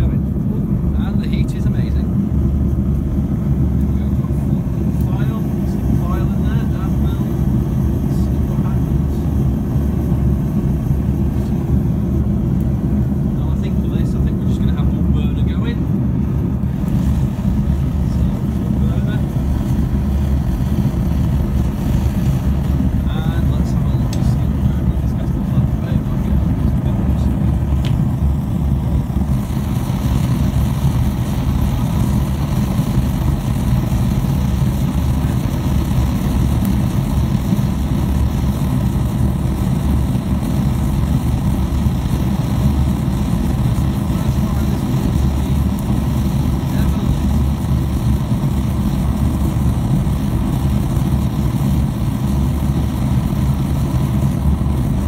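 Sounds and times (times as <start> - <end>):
gas forge rumble: 0.0 - 55.0.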